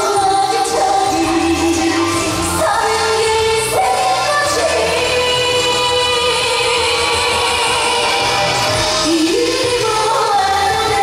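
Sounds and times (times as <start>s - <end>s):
woman singing into microphone: 0.0s - 8.4s, 9.0s - 11.0s
backing music: 0.0s - 11.0s.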